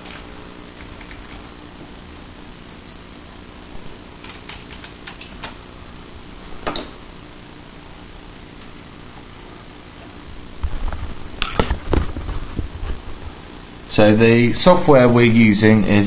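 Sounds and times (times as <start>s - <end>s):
fan hum: 0.0s - 16.0s
keyboard keys clicking: 0.8s - 1.4s, 4.2s - 5.6s.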